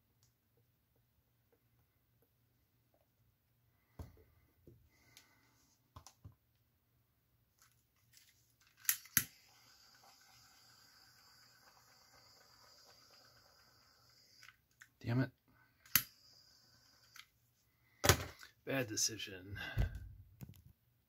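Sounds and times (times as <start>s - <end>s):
faint steady hiss: 0.0s - 19.8s.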